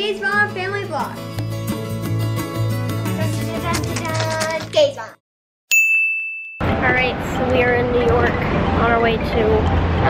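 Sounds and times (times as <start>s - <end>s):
bright chime ding: 5.7s - 6.8s
street traffic: 6.6s - 10.0s.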